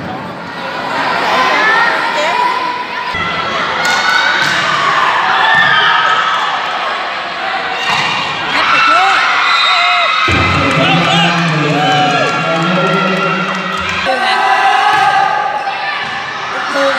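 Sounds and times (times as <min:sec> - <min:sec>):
players and spectators shouting: 0:00.3 - 0:16.9
crowd cheering: 0:00.6 - 0:16.9.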